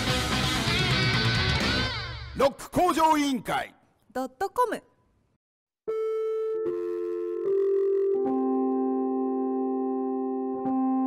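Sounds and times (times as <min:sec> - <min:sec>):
electronic keyboard held notes: 0:05.9 - 0:11.0.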